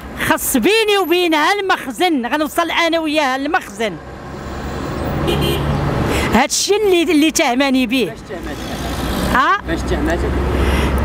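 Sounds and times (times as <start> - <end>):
vehicle passing with engine hum: 3.2 - 6.4, 7.8 - 11.0.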